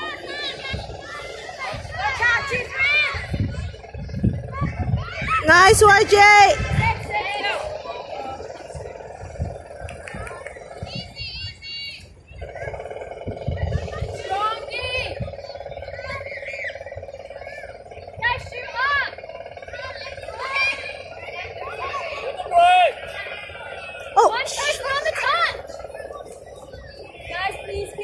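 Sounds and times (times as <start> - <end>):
distant shouted calls: 0.0 - 28.0
steady hum: 0.0 - 28.0.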